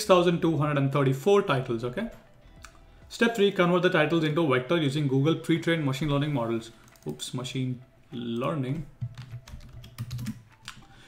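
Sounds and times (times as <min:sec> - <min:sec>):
computer keyboard keys clicking: 0:06.8 - 0:07.2, 0:08.4 - 0:11.0.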